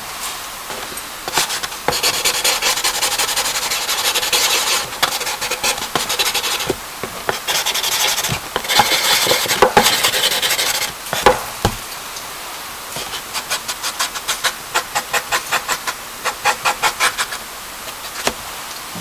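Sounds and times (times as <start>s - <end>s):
charcoal scratching on paper: 1.3s - 11.4s, 13.0s - 18.4s.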